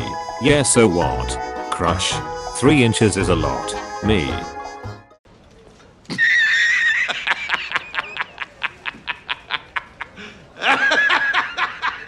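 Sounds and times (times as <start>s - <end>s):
louder higher laugh: 6.1s - 12.0s
man laughing in bursts: 6.1s - 12.0s.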